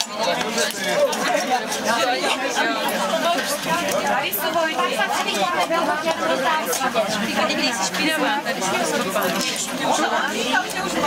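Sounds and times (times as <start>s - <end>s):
chatter of several voices: 0.0s - 11.0s.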